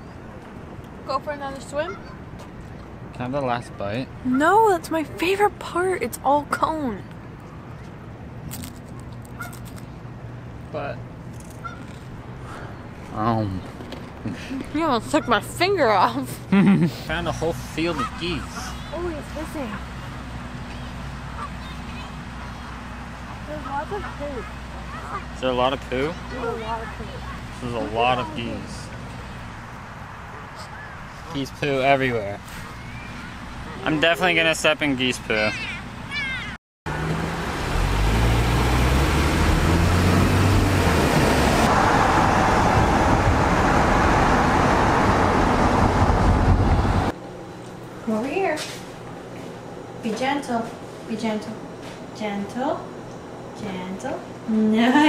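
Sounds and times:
car road and engine noise: 0.0s - 54.5s
geese honking: 9.4s - 9.7s, 11.6s - 12.0s, 17.8s - 20.0s, 20.8s - 21.8s
low background hum: 47.2s - 55.0s.

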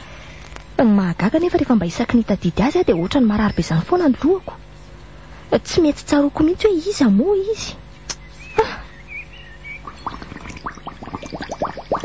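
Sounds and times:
liquid gurgling blips: 9.6s - 12.0s.

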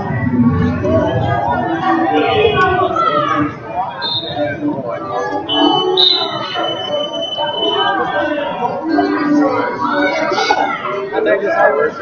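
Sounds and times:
crowd voices and shouting: 0.0s - 12.0s.

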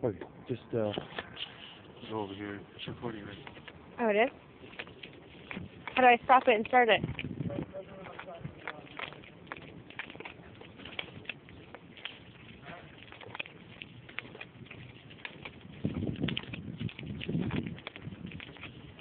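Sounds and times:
footsteps on concrete: 0.1s - 19.0s.

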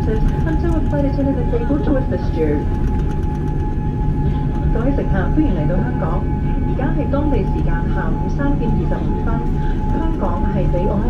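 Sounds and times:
aircraft cabin low rumble: 0.0s - 11.0s
passengers talking: 0.0s - 11.0s.

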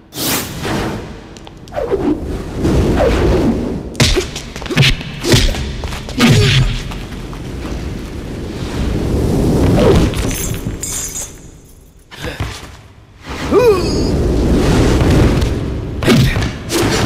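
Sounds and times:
punch and body-impact hits: 4.0s - 7.0s.

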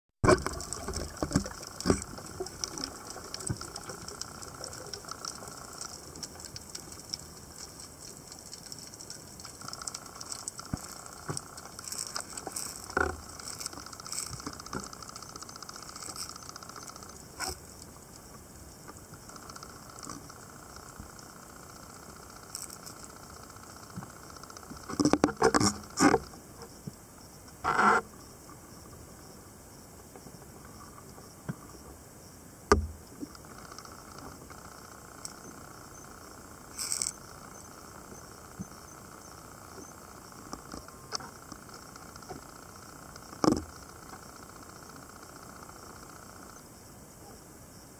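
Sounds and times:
muffled underwater water hiss: 0.3s - 28.0s.

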